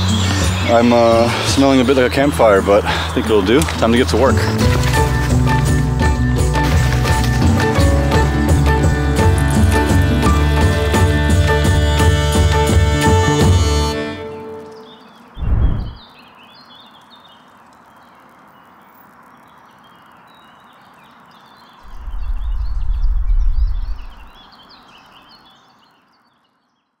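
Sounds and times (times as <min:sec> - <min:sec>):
birds chirping: 0:00.0 - 0:06.1, 0:14.2 - 0:27.0
low rumble: 0:15.4 - 0:16.0, 0:21.9 - 0:24.4
short low thud: 0:15.4 - 0:16.0.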